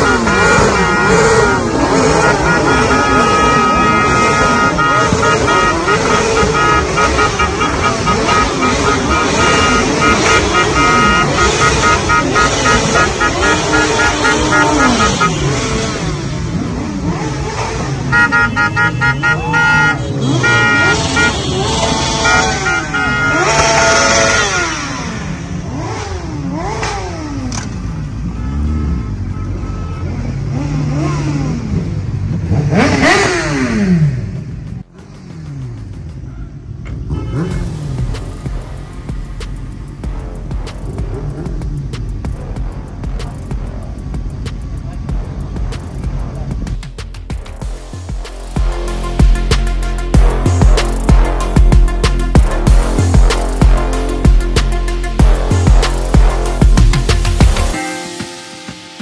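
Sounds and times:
vehicle horns honking: 0.0 - 31.8, 32.7 - 34.1, 36.8 - 41.8, 47.6 - 59.0
motorcycle engines revving: 0.0 - 58.0.

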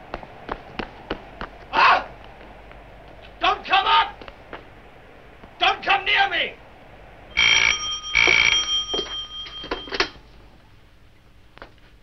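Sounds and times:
telephone bell ringing: 7.3 - 10.2.

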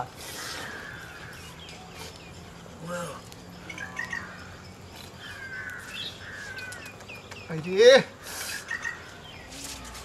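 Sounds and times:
birds chirping: 0.0 - 10.0
falling bird calls: 0.0 - 10.0.

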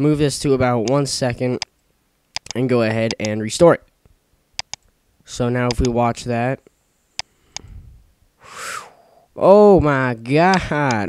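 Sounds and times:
computer mouse clicks: 2.3 - 3.4, 4.6 - 4.9, 5.7 - 6.0
breathy exhale: 7.3 - 9.3.

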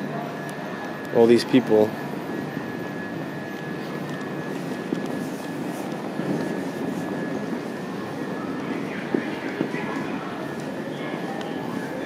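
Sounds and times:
low hum of train: 0.0 - 12.0
thin high whine: 0.0 - 12.0.

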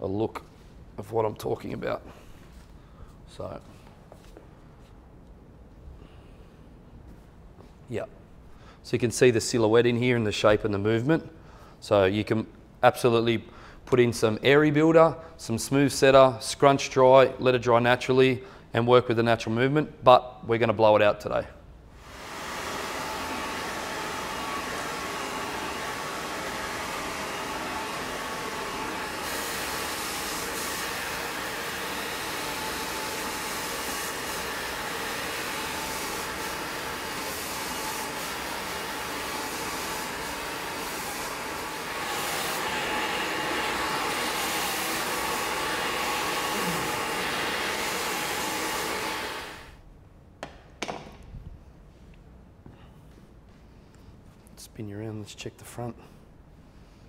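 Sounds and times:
hair dryer blowing: 22.0 - 49.8.

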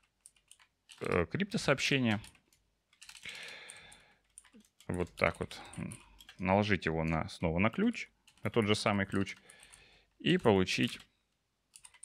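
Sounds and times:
keyboard typing: 0.0 - 1.3, 2.1 - 7.2, 7.8 - 9.8, 10.7 - 11.1, 11.7 - 12.0
soft breath: 3.2 - 4.3, 9.4 - 10.1.

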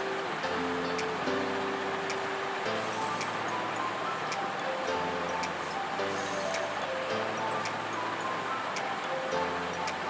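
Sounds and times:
light instrumental music: 0.0 - 10.0.

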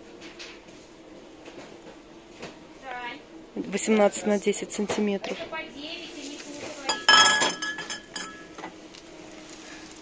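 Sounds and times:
glass bowl clinking on glass: 6.9 - 8.6.

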